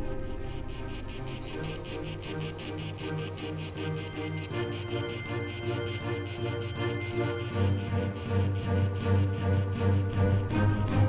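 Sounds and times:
crickets chirping: 0.0 - 11.0
soft background music: 0.0 - 11.0.

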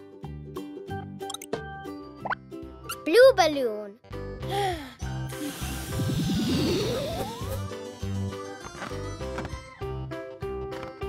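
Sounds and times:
light cartoon background music: 0.0 - 11.0
short rising squeak: 6.2 - 7.7.

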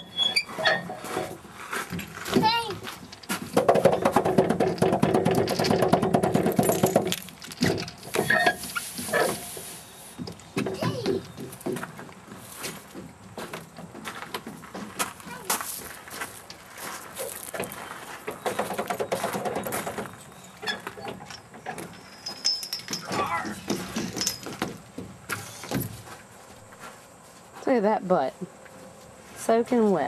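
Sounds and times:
footsteps and knocks on metal deck: 0.6 - 9.5, 10.2 - 22.0, 22.8 - 26.9
children's voices: 10.7 - 11.2.

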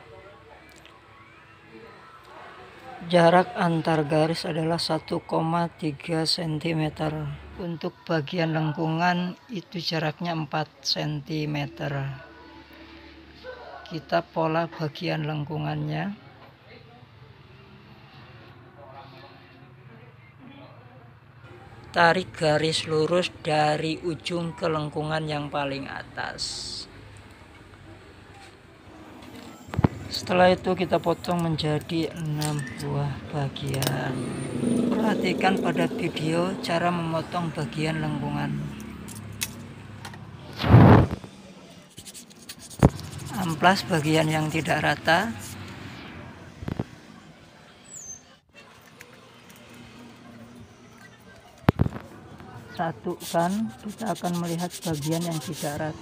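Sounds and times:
faint indistinct voices: 0.0 - 56.0.

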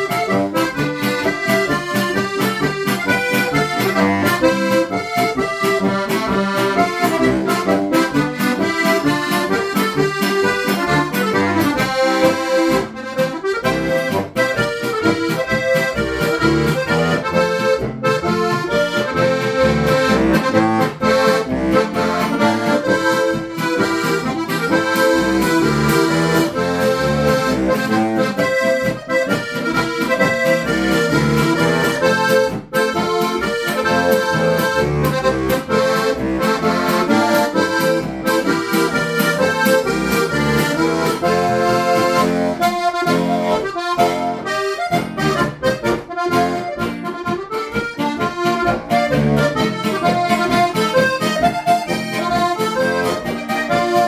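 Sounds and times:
button accordion playing a tune: 0.0 - 54.0.

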